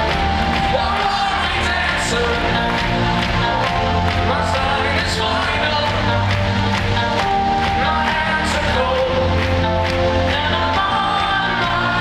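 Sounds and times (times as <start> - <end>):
bass: 0.0 - 12.0
crowd noise: 0.0 - 12.0
live rock band playing: 0.0 - 12.0
sustained keyboard chords: 0.0 - 12.0.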